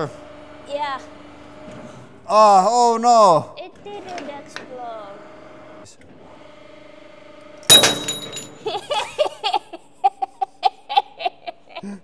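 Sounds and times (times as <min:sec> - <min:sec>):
hydraulic press humming: 0:03.6 - 0:09.0
loud metallic crack: 0:07.6 - 0:08.7
people laughing: 0:08.6 - 0:12.0.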